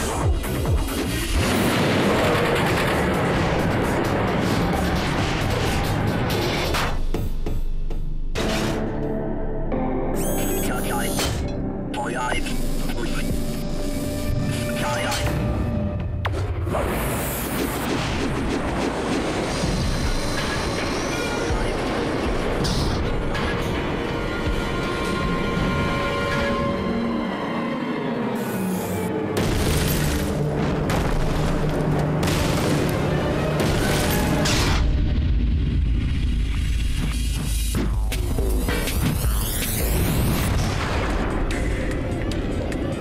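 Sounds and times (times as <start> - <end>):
music with booming bass: 0.0 - 9.2, 33.6 - 43.0
rumbling and clattering of ride: 0.1 - 7.1, 17.9 - 26.8.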